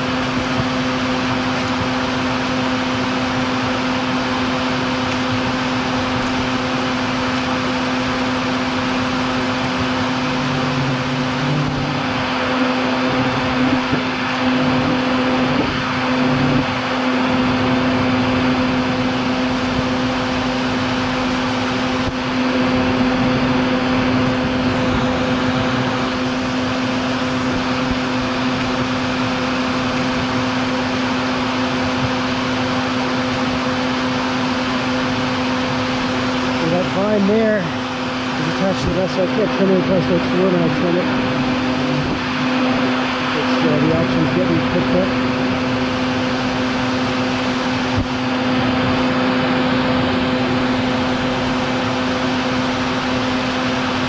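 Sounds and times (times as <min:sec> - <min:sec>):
vacuum humming: 0:00.0 - 0:54.0.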